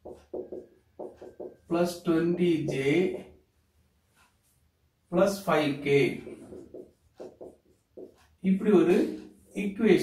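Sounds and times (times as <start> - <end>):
marker writing on whiteboard: 0.0 - 3.5, 5.7 - 10.0.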